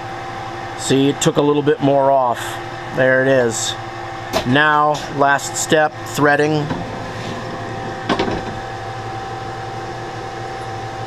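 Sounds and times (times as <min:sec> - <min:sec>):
lathe humming: 0:00.0 - 0:11.0.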